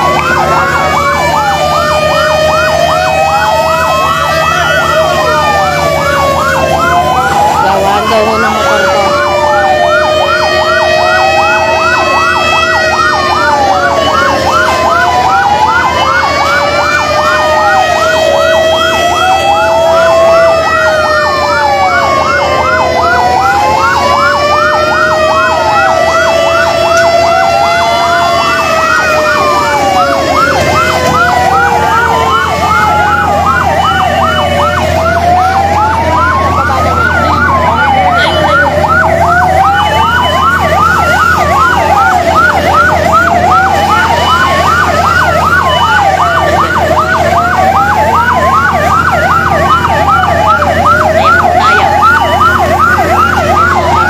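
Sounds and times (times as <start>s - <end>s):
fire truck sirens: 0.0s - 54.0s.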